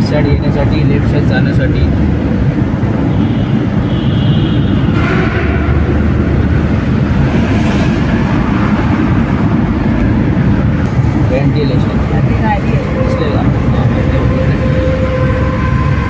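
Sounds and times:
car rumbling through tunnel: 0.0s - 16.0s
passing vehicle: 0.0s - 16.0s.

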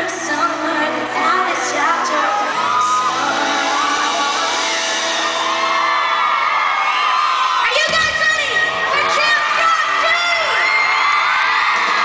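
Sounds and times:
live band music: 0.0s - 6.5s
crowd whooping and screaming: 0.9s - 12.0s.

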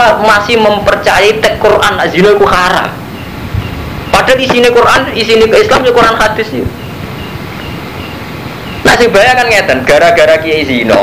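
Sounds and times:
man speaking: 0.0s - 3.0s, 4.1s - 6.8s, 8.8s - 11.0s
background hiss: 0.0s - 11.0s.

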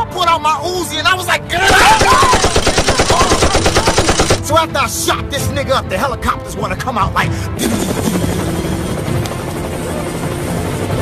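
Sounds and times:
background music: 0.0s - 11.0s
helicopter rotor and engine: 1.8s - 4.6s, 7.2s - 11.0s.

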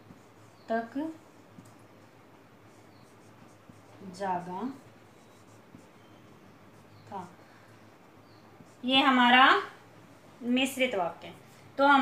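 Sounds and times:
marker pen on whiteboard: 0.0s - 12.0s
steady low hum: 0.0s - 12.0s.

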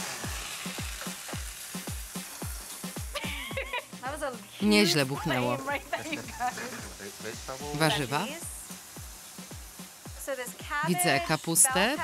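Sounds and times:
music with kick-drum beat: 0.0s - 12.0s
seafood sizzling in a hot pan: 0.0s - 12.0s.

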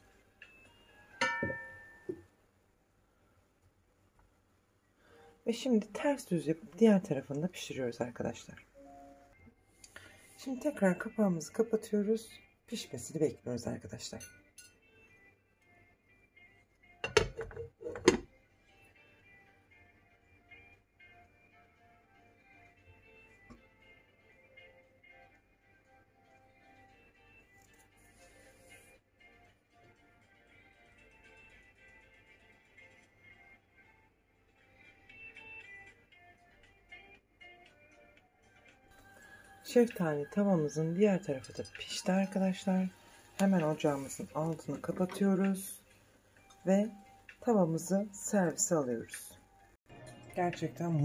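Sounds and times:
quiet music: 0.0s - 2.6s, 4.0s - 51.0s
glass lid clinking on pan: 1.2s - 2.2s.

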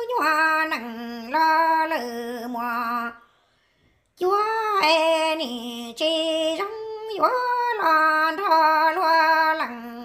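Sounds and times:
woman singing unaccompanied: 0.0s - 3.2s, 4.2s - 10.0s.

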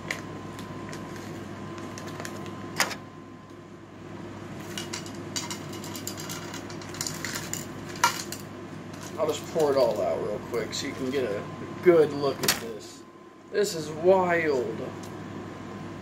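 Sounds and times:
plastic packaging crinkling: 0.0s - 2.6s
room hum: 0.0s - 16.0s.

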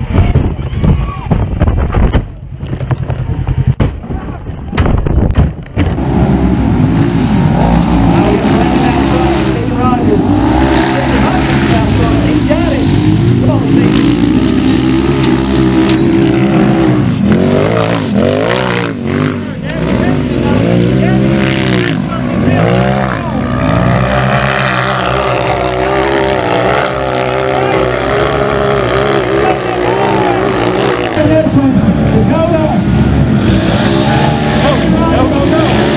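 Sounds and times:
utv engines revving hard: 5.7s - 35.9s.

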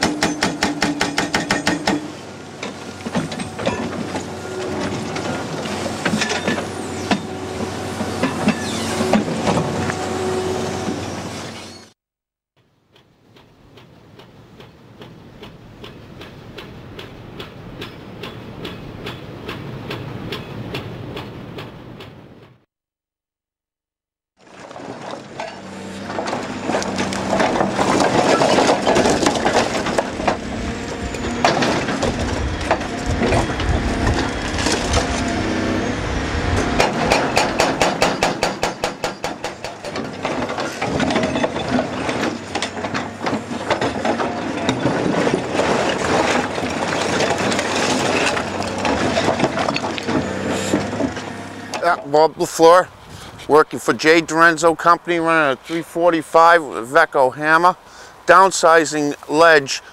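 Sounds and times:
hydraulic breaker hammering rock: 0.0s - 10.0s, 24.7s - 35.8s, 36.6s - 52.1s
diesel engine running: 25.2s - 52.0s.

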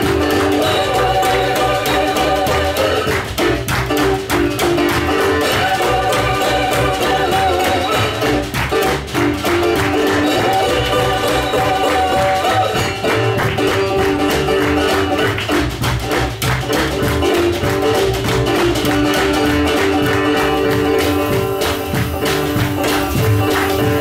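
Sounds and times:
acoustic guitar: 0.0s - 24.0s
hand drums: 0.0s - 24.0s
upright double bass: 0.0s - 24.0s.

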